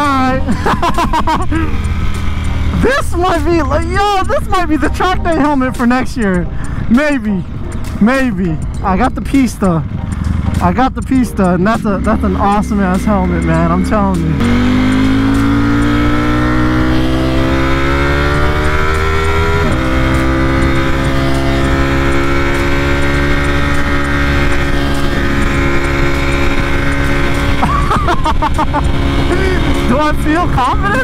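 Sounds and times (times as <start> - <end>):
motorcycle engine revving: 0.0 - 31.0.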